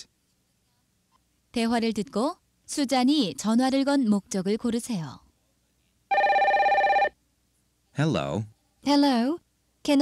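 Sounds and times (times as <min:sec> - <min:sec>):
telephone ringing: 0:06.1 - 0:07.2.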